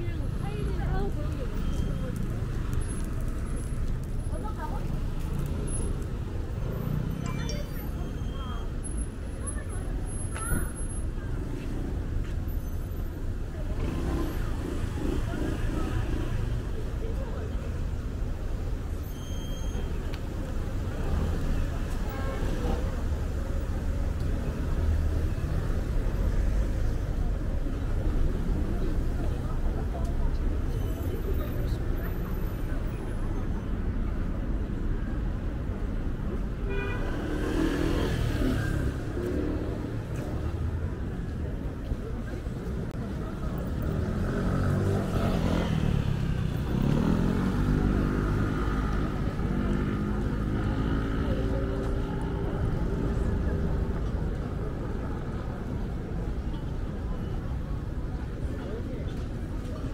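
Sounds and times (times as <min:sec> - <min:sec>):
passers-by talking: 0:00.0 - 0:59.9
traffic rumble: 0:00.0 - 0:59.9.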